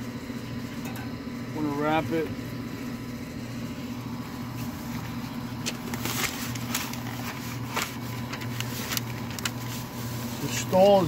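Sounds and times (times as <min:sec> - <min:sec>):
butcher paper rustling: 0:04.5 - 0:11.0.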